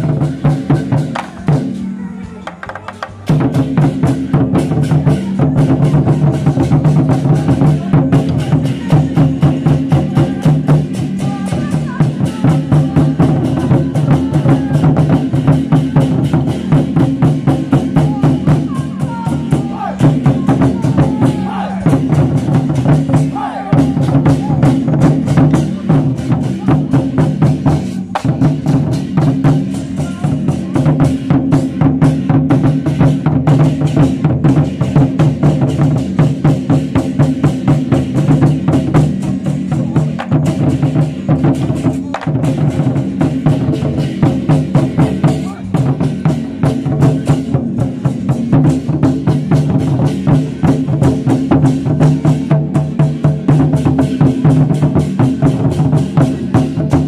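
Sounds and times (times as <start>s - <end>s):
hand cymbals clashing: 0.0s - 57.0s
large drums beating fast: 0.0s - 57.0s.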